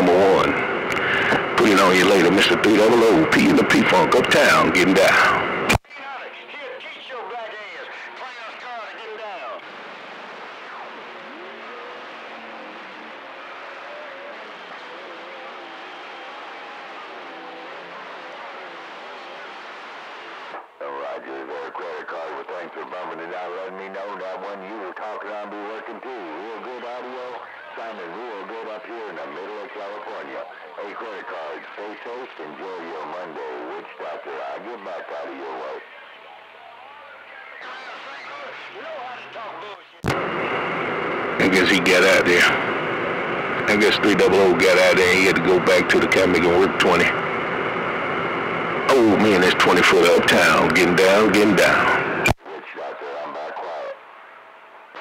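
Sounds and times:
garbled radio voices: 0.0s - 54.0s
radio static: 0.0s - 54.0s.

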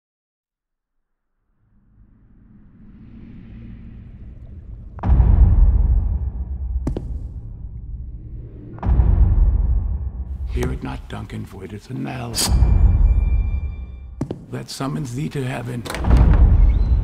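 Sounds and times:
deep rumble: 1.4s - 11.5s
deep boom: 2.7s - 11.3s, 12.5s - 14.2s, 16.0s - 17.0s.

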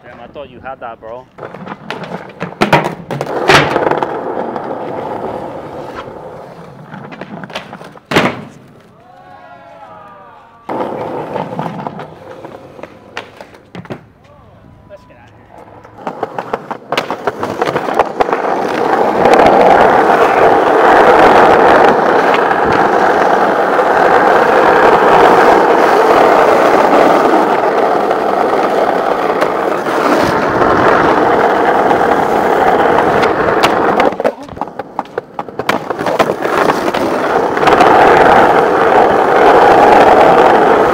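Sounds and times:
skateboard wheels rolling on asphalt: 0.0s - 14.4s, 15.0s - 40.9s
skateboard clack: 1.3s - 14.4s, 15.2s - 40.9s.

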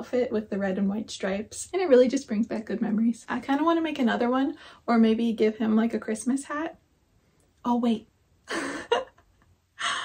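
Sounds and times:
woman laughing breathily: 8.5s - 10.0s.

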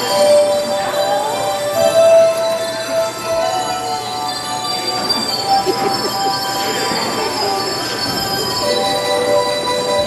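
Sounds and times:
hand bells ringing: 0.0s - 10.0s.

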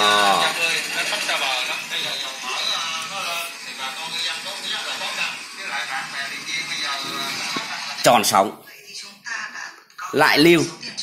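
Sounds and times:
radio music with voice: 0.1s - 11.0s.

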